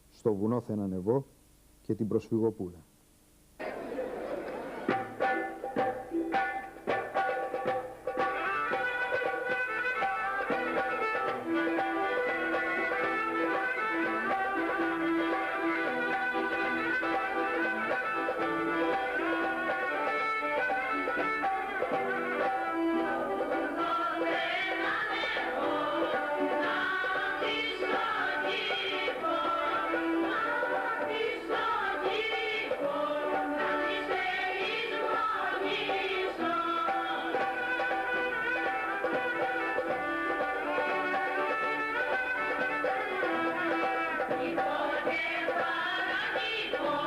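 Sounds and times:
folk music melody: 4.3 - 47.0.

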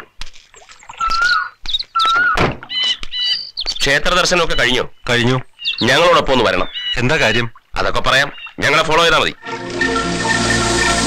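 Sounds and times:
birds whistling and chirping: 0.9 - 7.5, 8.2 - 8.6.

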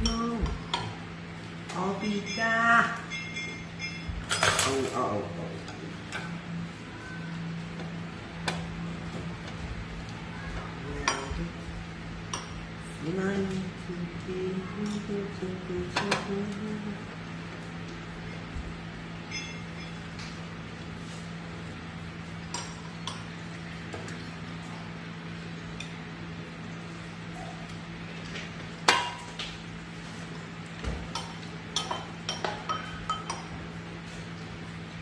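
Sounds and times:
low steady hum: 0.0 - 35.0.

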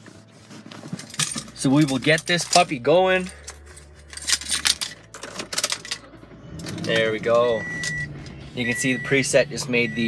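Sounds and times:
low hum: 3.3 - 10.0.

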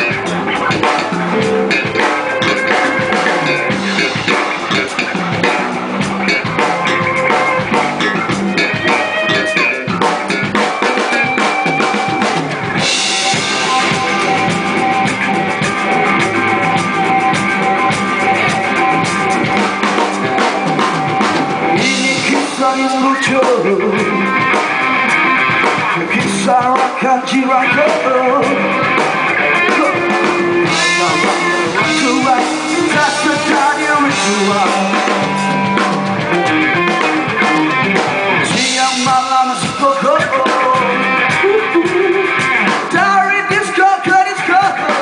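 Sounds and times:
bass guitar: 0.0 - 45.0
drum kit: 0.0 - 45.0
electric guitars: 0.0 - 45.0.

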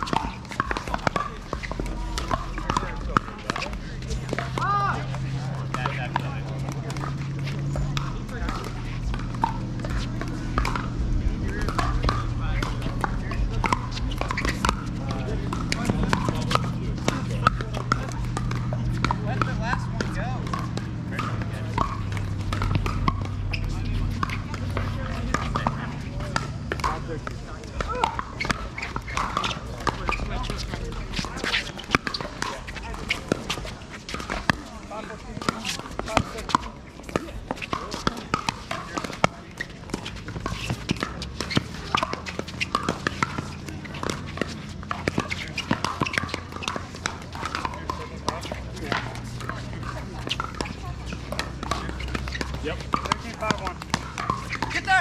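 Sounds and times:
indistinct voices: 0.0 - 55.0
paddles hitting plastic ball: 0.0 - 55.0.

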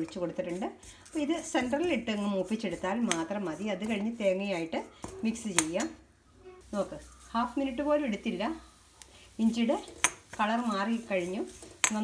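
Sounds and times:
spoon stirring in frying pan: 0.0 - 12.0.

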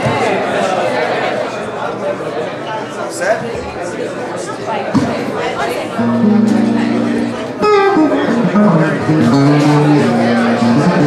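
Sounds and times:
acoustic guitar: 5.9 - 11.0.

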